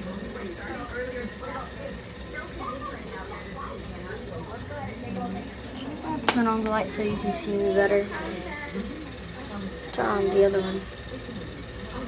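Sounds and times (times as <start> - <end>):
faint voices: 0.0 - 12.0
steady low hum: 0.0 - 12.0.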